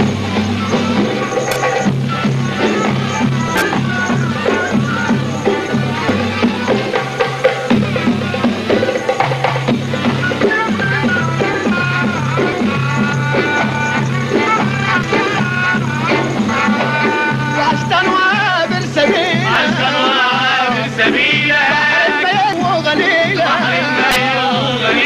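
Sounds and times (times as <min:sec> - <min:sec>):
wavering melody line: 0:00.0 - 0:19.6
steady drum beat: 0:00.0 - 0:25.0.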